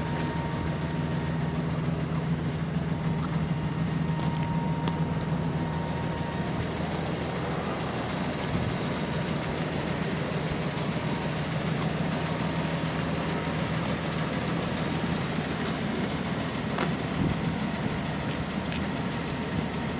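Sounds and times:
pickup truck engine idling: 0:00.0 - 0:19.9.

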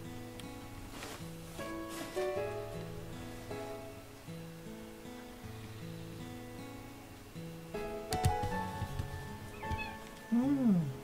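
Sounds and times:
acoustic guitar music: 0:00.0 - 0:11.0
cat meowing: 0:09.5 - 0:10.6.

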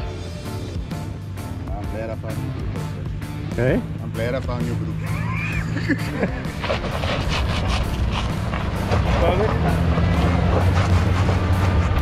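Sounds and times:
background music: 0:00.0 - 0:12.0
engine running at low revs: 0:00.0 - 0:12.0.

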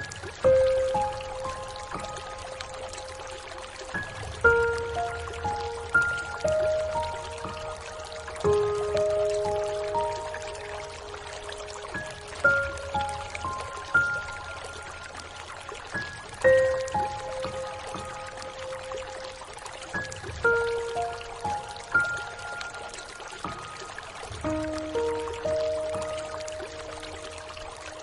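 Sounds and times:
rain hiss: 0:00.0 - 0:28.0
soft solo piano: 0:00.0 - 0:28.0.

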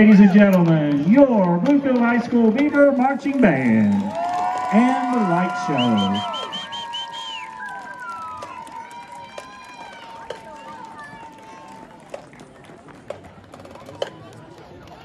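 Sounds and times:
crowd talking: 0:00.0 - 0:15.0.

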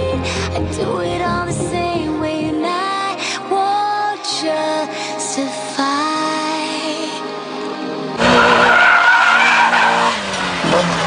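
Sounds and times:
music: 0:00.0 - 0:08.7
car engine at high revs: 0:08.2 - 0:11.0
tyres squealing: 0:08.2 - 0:11.0.

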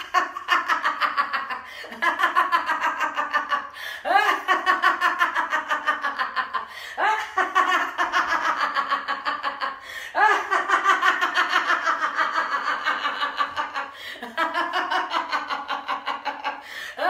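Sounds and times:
woman laughing heartily: 0:00.0 - 0:17.0.

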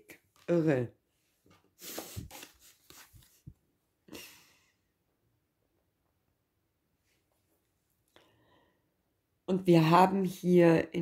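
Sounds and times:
cards sliding on table: 0:01.5 - 0:03.5.

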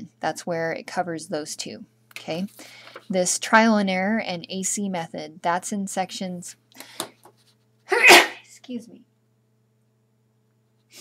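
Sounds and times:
woman sneezing: 0:07.9 - 0:08.5.

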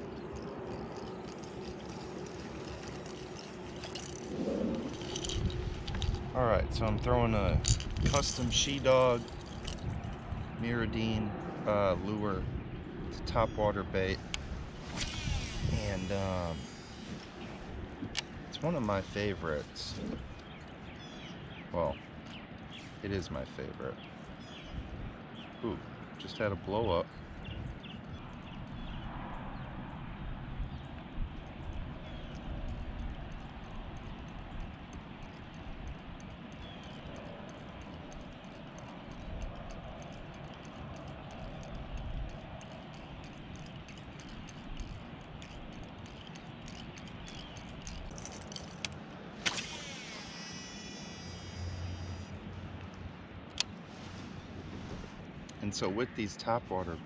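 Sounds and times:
calm water and open air: 0:00.0 - 0:57.0
fishing reel cranking: 0:00.4 - 0:06.2, 0:14.9 - 0:17.4, 0:47.2 - 0:52.3
faint regular ticking: 0:31.3 - 0:49.0
sharp click: 0:47.0 - 0:51.9.

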